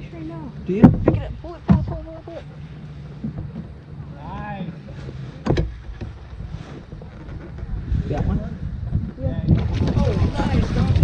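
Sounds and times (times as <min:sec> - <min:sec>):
wind buffeting microphone: 0:03.2 - 0:11.0.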